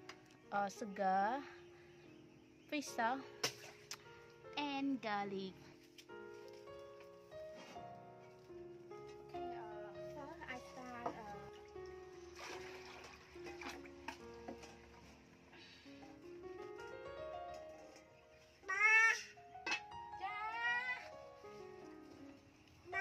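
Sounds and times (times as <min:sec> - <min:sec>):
soft slow background music: 0:00.0 - 0:23.0.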